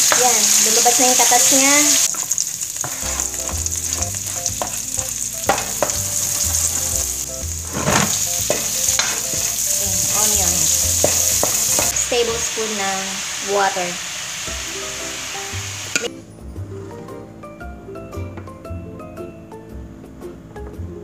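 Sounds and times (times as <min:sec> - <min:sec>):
wooden spatula scraping wok: 0:00.0 - 0:12.3
food sizzling in hot oil: 0:00.0 - 0:16.1.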